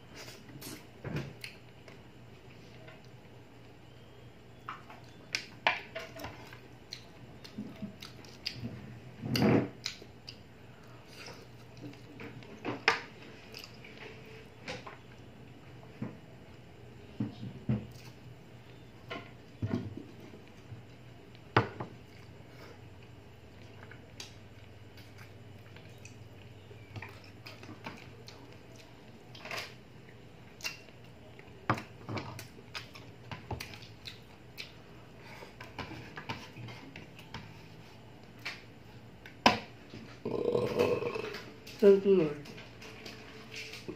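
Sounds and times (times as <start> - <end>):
faint low hum: 0.0 - 43.9.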